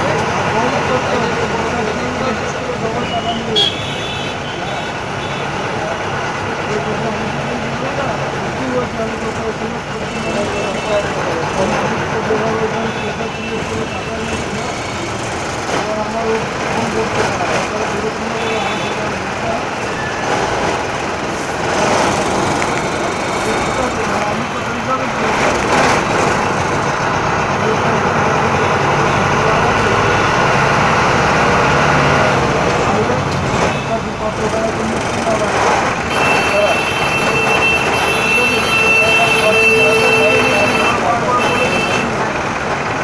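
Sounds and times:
people talking: 0:00.0 - 0:42.7
minibus engine running: 0:00.0 - 0:43.0
road noise: 0:00.0 - 0:43.0.

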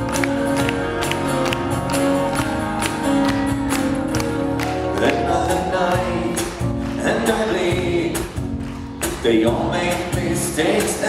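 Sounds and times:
acoustic guitar: 0:00.0 - 0:11.0
person singing: 0:00.0 - 0:11.0.

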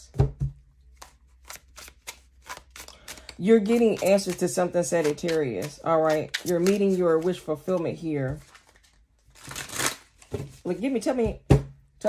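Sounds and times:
cards being shuffled: 0:00.9 - 0:10.6.

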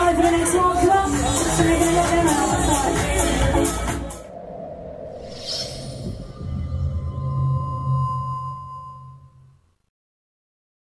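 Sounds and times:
deep hum: 0:02.8 - 0:09.8
steady ringing tone: 0:05.4 - 0:09.8.

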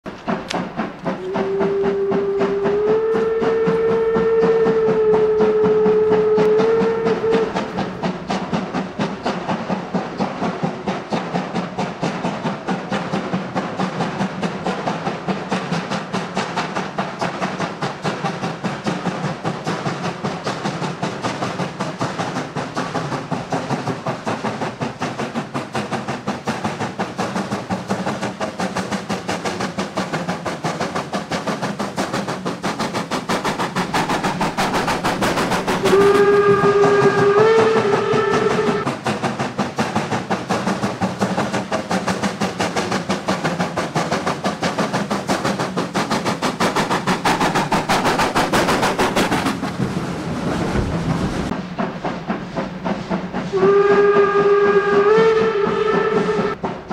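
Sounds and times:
steam locomotive exhaust chuffing: 0:00.0 - 0:56.9
steam whistle blast: 0:01.2 - 0:07.8, 0:35.8 - 0:38.9, 0:53.5 - 0:56.6.

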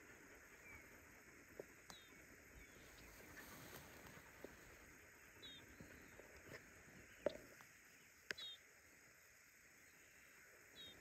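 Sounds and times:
faint high chirps: 0:01.8 - 0:06.3, 0:06.9 - 0:08.7, 0:09.8 - 0:11.0.

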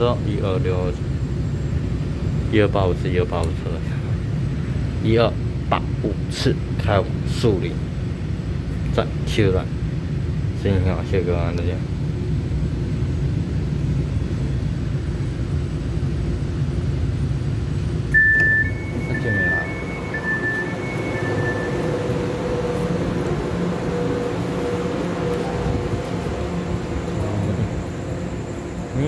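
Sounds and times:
train rumbling: 0:00.0 - 0:29.0
two-tone beeping chime: 0:18.1 - 0:23.0.

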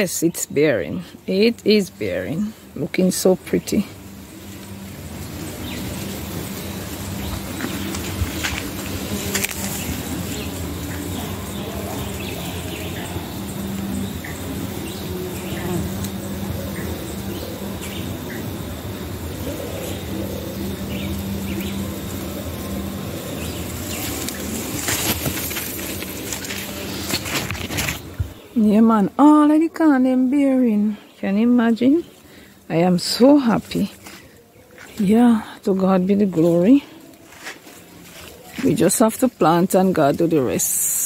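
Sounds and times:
honeybees buzzing: 0:00.0 - 0:41.0
leaves brushing: 0:01.4 - 0:28.7, 0:32.0 - 0:41.0.

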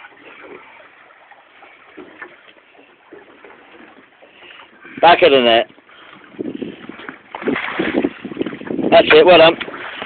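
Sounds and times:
boat rumbling: 0:00.0 - 0:10.0
wind against microphone: 0:03.2 - 0:10.0.

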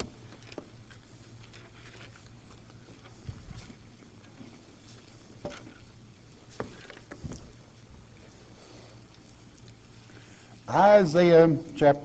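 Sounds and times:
pages rustling: 0:00.0 - 0:07.6.

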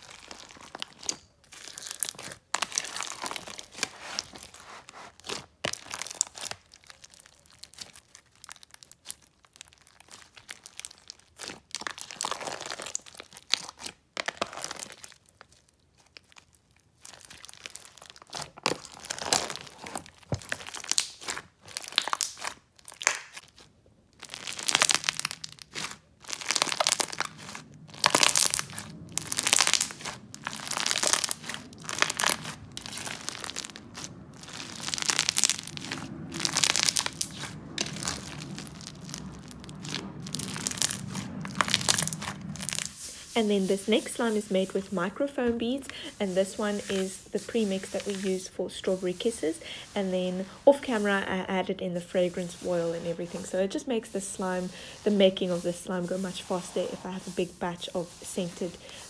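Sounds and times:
hands squishing slime: 0:00.0 - 0:15.2, 0:15.9 - 0:43.8
foam beads crunching: 0:00.0 - 0:59.0.

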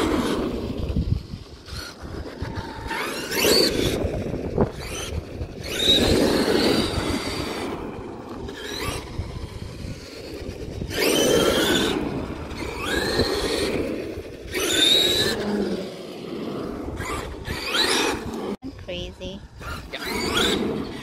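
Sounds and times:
toy truck motor whining: 0:00.0 - 0:18.6, 0:19.4 - 0:21.0
tyre noise on road: 0:00.0 - 0:18.6.

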